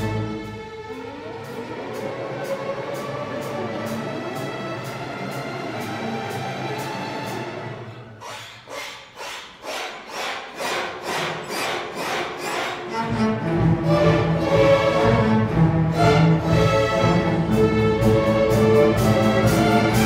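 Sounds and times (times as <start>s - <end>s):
string orchestra playing: 0.0s - 8.2s, 10.5s - 20.0s.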